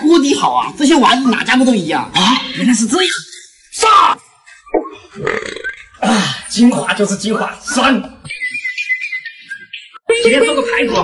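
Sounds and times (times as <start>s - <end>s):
man gulping and swallowing: 4.7s - 6.3s.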